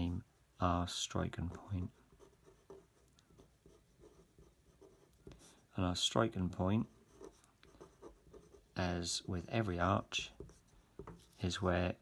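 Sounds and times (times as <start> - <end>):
pen scratching on paper: 1.3 - 5.7, 6.3 - 11.4.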